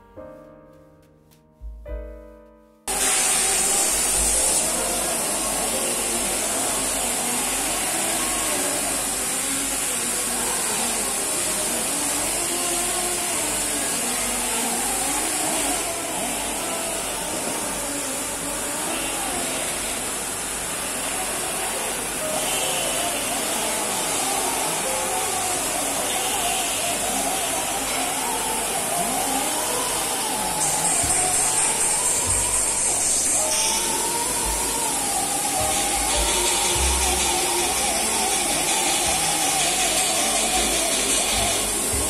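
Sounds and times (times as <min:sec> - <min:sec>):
power tool high-pitched hiss: 0:02.9 - 0:42.0.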